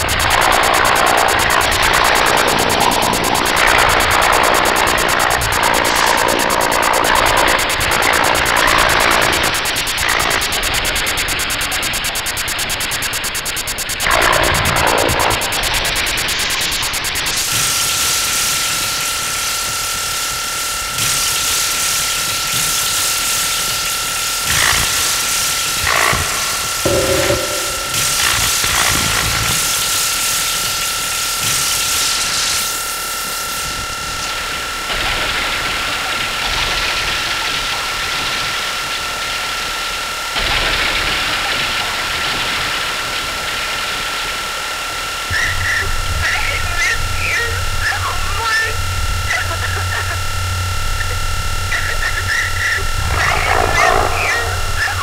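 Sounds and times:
high-pitched whine: 0:00.0 - 0:35.6, 0:45.3 - 0:55.0
harsh electronic noise: 0:22.7 - 0:31.1, 0:45.3 - 0:55.0
low bass tone: 0:25.9 - 0:28.7, 0:52.8 - 0:55.0.

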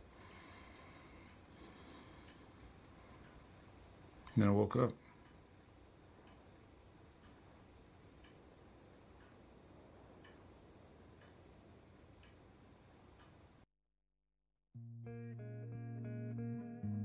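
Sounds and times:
low room tone hiss: 0:00.0 - 0:13.7
clock ticking: 0:00.1 - 0:01.5, 0:02.1 - 0:05.5, 0:06.1 - 0:11.4, 0:12.1 - 0:12.5, 0:13.1 - 0:13.4.

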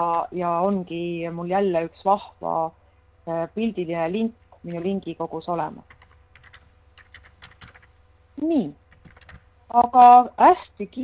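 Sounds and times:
computer keyboard clicking: 0:05.9 - 0:07.9, 0:08.9 - 0:09.5.

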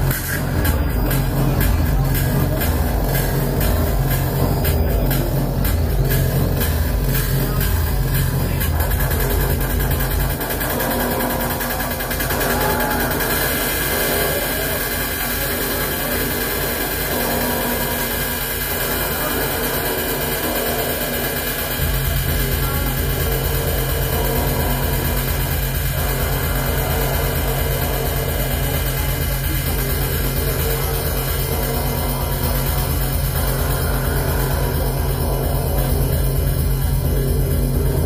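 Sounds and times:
droning synthesizer noise: 0:00.0 - 0:38.0
loud electronic music: 0:00.0 - 0:38.0
pulsing low bass: 0:00.0 - 0:38.0.

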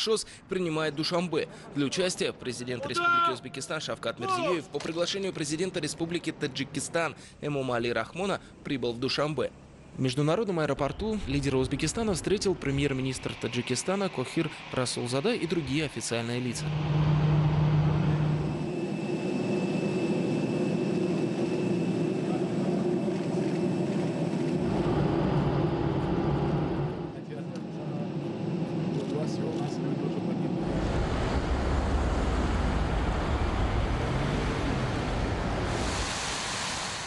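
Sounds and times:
steady low hum: 0:11.6 - 0:36.1
deep low rumble: 0:16.6 - 0:18.7, 0:29.9 - 0:36.1.

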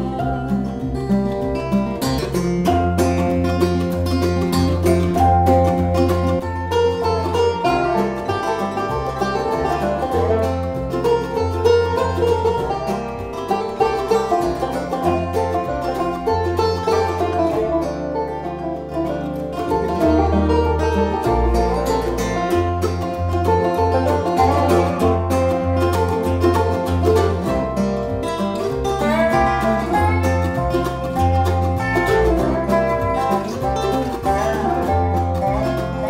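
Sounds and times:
banjo picking: 0:00.0 - 0:36.0
bluegrass string band playing: 0:00.0 - 0:36.0
upright bass: 0:00.0 - 0:36.0.

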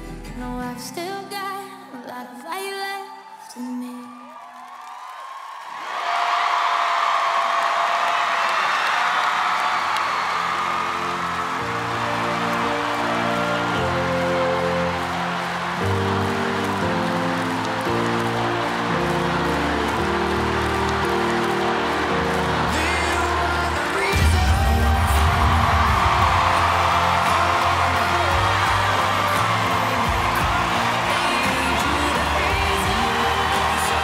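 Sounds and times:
music: 0:00.0 - 0:04.0, 0:09.2 - 0:34.0
audience applause and cheering: 0:03.2 - 0:34.0.

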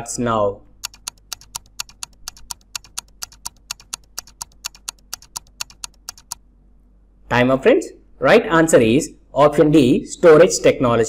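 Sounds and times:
rapid timer ticking: 0:00.8 - 0:06.4.

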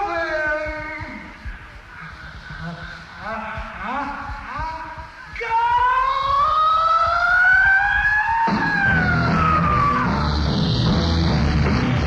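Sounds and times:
drums and bass: 0:00.0 - 0:12.0.

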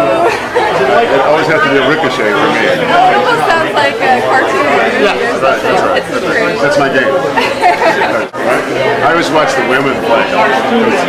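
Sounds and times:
man and woman talking: 0:00.0 - 0:11.0.

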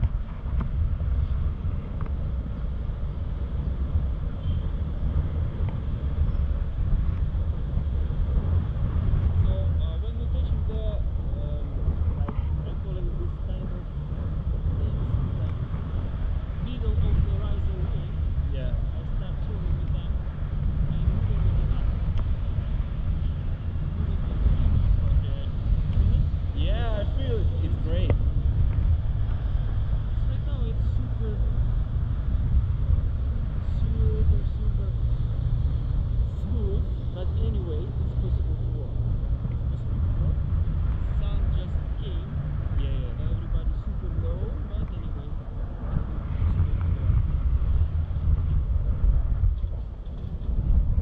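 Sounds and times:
wind rushing over microphone: 0:00.0 - 0:51.0.

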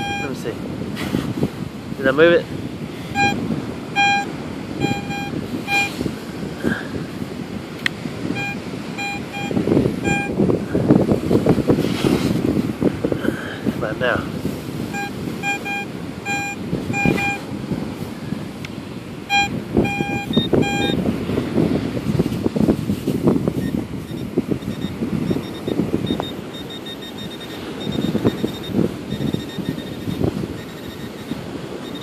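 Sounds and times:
high-pitched pinpointer beep: 0:00.0 - 0:00.4, 0:03.1 - 0:06.0, 0:08.3 - 0:10.4, 0:14.9 - 0:17.4, 0:19.3 - 0:21.0, 0:23.6 - 0:32.0
metal detector beeping: 0:00.0 - 0:00.5, 0:03.0 - 0:06.0, 0:08.3 - 0:10.5, 0:14.8 - 0:17.5, 0:19.2 - 0:21.1, 0:23.5 - 0:32.0.

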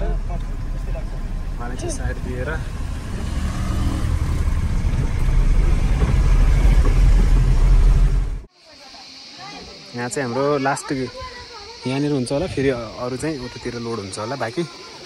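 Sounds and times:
truck engine rumbling: 0:00.0 - 0:08.5.

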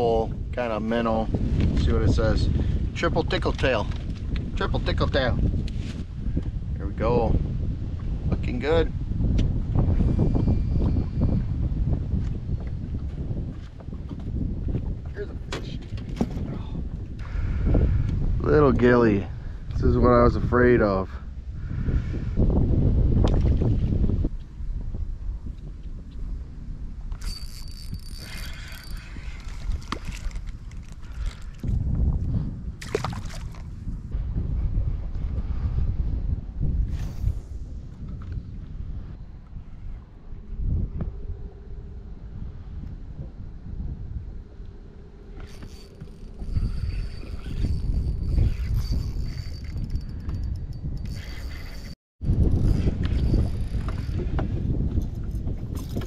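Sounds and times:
wind rumbling on microphone: 0:00.0 - 0:56.0
water lapping at hull: 0:32.8 - 0:33.8.

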